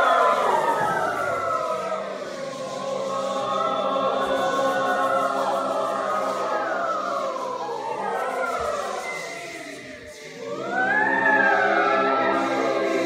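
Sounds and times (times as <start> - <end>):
mixed choir singing chords: 0.0 - 13.0.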